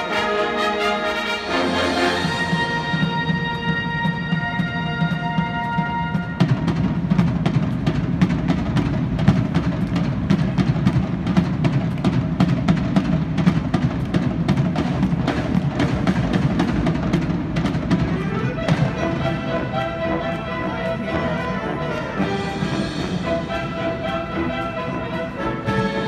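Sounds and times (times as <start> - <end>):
brass chords: 0.0 - 7.1, 17.9 - 26.0
marching band playing: 0.0 - 26.0.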